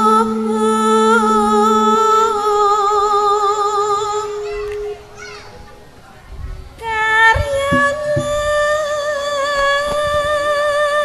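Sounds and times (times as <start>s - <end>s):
crowd voices: 0.0s - 9.1s.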